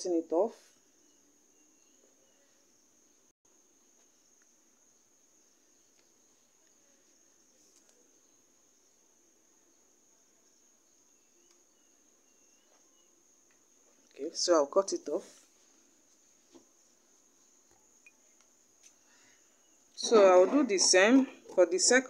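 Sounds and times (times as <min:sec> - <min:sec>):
faint high-pitched whine: 0:00.0 - 0:22.0.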